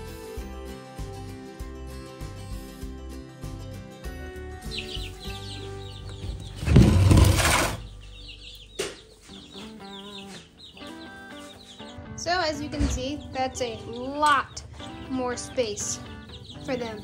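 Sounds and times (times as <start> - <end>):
background music: 0.0 - 17.0
chicks peeping: 4.4 - 17.0.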